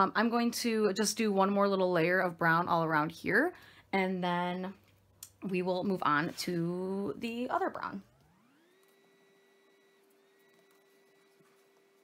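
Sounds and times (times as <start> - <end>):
faint rising tone: 6.2 - 12.0.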